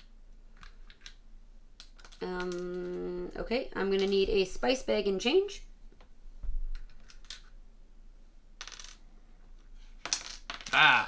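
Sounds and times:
game pieces clinking in plastic organizer: 0:01.8 - 0:02.9.

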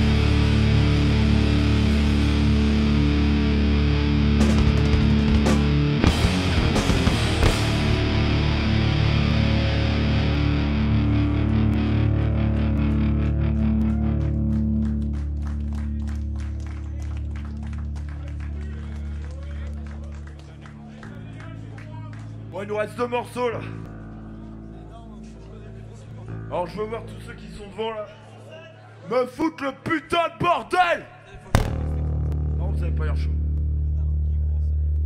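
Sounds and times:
distorted electric guitar drone: 0:00.0 - 0:16.2, 0:31.6 - 0:35.0.

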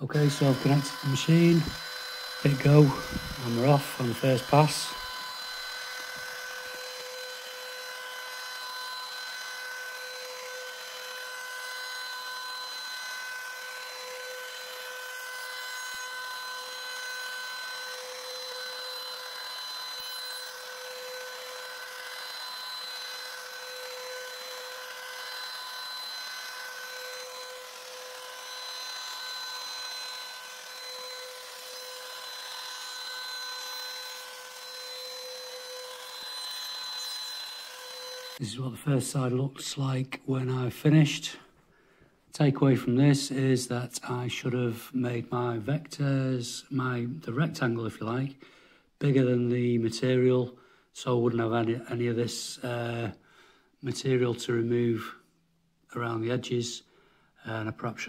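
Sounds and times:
router motor whine: 0:00.0 - 0:38.4
bit cutting wood: 0:00.0 - 0:38.5.

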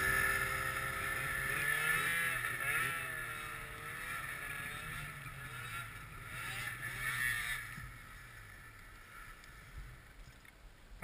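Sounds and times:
snowmobile engine revving: 0:00.0 - 0:10.1
snowmobile engine idling: 0:00.0 - 0:10.3.

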